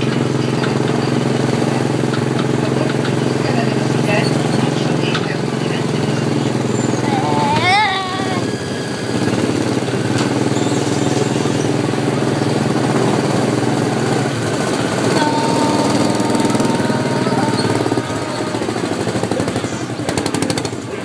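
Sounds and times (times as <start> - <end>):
go-kart engine running: 0.0 - 21.0.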